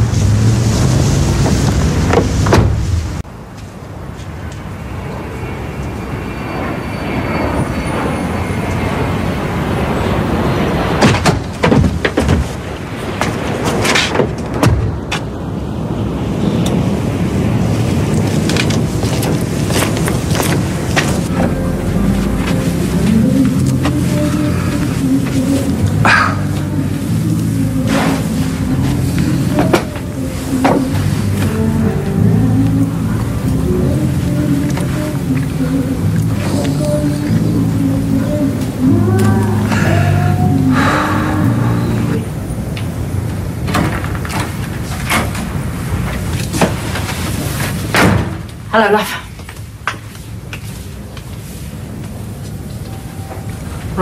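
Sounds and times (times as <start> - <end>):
traffic running: 0.0 - 54.0
music: 21.3 - 42.3.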